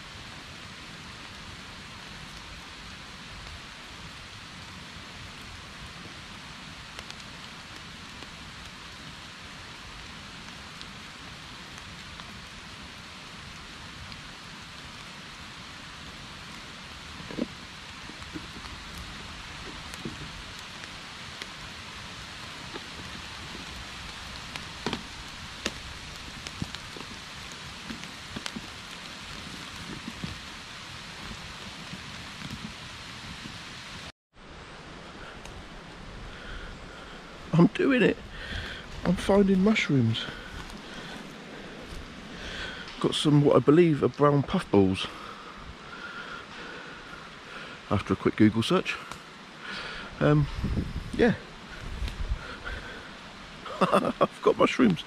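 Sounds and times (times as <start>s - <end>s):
rain hissing through woodland: 0.0s - 55.0s
leaf litter rustling: 16.2s - 33.7s.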